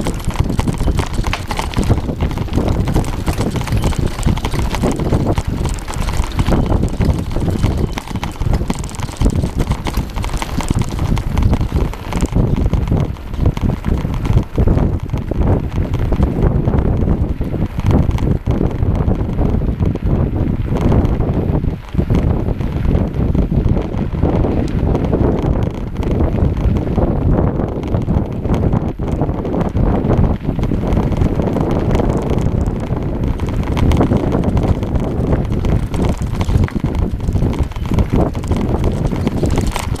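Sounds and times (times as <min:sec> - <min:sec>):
jolts and rattles: 0:00.0 - 0:12.0
tyre rumble on gravel: 0:00.0 - 0:16.3, 0:30.6 - 0:40.0
wind on microphone: 0:00.0 - 0:40.0.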